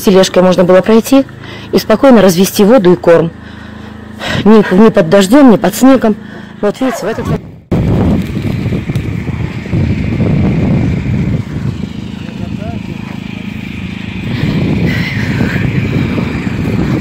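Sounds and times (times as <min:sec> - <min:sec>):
low rumble: 0:07.1 - 0:17.0
arc welding crackling: 0:07.7 - 0:12.7.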